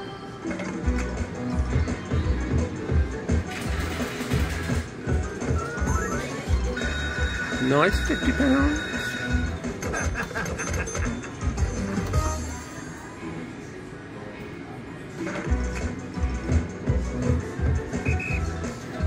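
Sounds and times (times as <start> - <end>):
slot machine game music: 3.2 - 12.8
big-win celebration jingle: 6.8 - 9.6.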